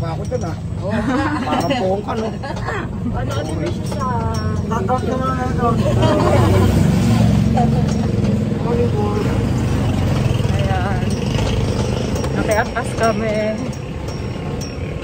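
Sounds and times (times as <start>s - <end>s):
vehicle engine and road rumble: 0.0s - 15.0s
voices talking: 0.0s - 15.0s.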